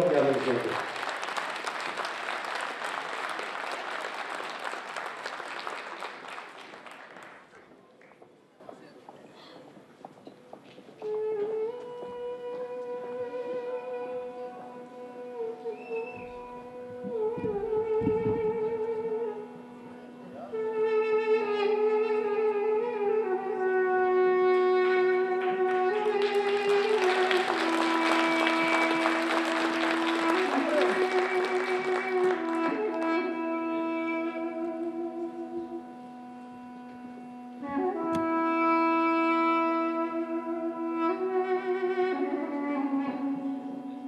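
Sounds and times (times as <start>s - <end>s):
duduk ornamented melody: 0.0s - 1.3s, 11.0s - 44.0s
duduk low drone: 11.0s - 44.0s.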